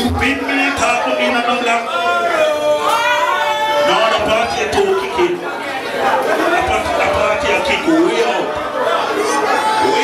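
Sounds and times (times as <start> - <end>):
loud crowd chatter: 0.0 - 10.0.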